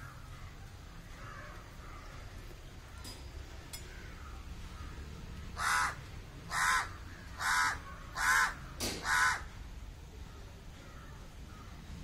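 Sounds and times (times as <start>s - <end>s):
crow cawing: 1.1s - 2.2s, 5.6s - 9.6s.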